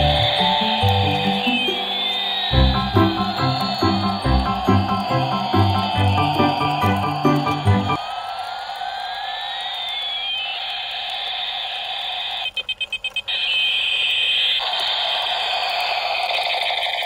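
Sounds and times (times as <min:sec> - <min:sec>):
electronic beeping pulses: 0:00.0 - 0:08.0
toy buzzing with siren sweeps: 0:00.0 - 0:17.0.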